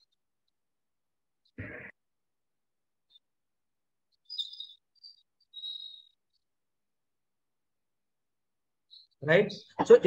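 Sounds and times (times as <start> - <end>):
faint bird chirping: 2.8 - 9.8.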